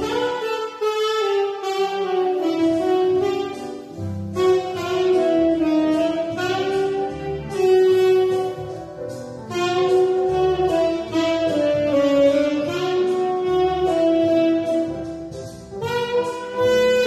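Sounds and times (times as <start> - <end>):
tenor saxophone slow melody: 0.0 - 17.0.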